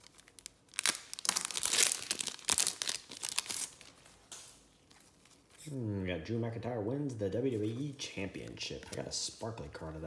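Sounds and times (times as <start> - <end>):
wrapper tearing and crinkling: 0.0 - 4.5.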